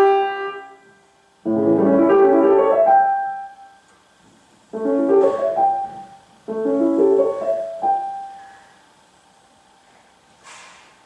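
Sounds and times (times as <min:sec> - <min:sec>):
grand piano chords: 0:00.0 - 0:03.9, 0:04.7 - 0:08.8.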